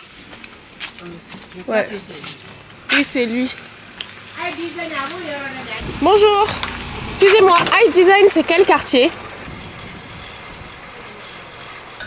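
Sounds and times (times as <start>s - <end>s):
car cabin road noise: 0.0s - 12.0s.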